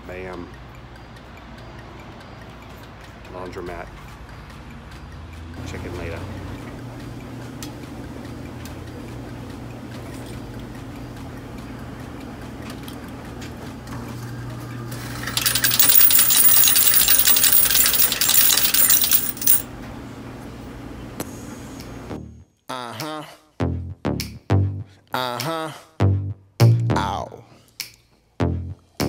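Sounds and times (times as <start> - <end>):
coins clattering into metal hopper: 15.0 - 19.6.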